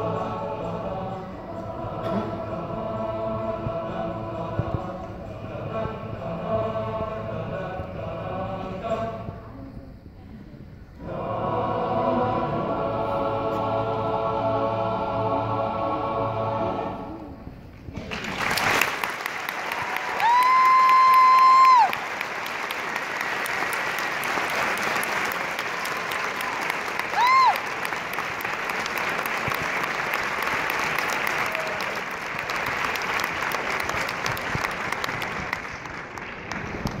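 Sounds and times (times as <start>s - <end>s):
choir chord: 0.0s - 9.4s, 11.0s - 17.6s
audience applause: 18.0s - 37.0s.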